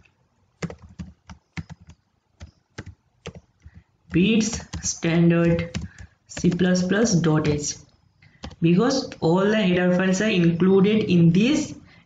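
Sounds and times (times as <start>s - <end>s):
keyboard typing clicks: 0.6s - 6.9s, 7.8s - 9.2s.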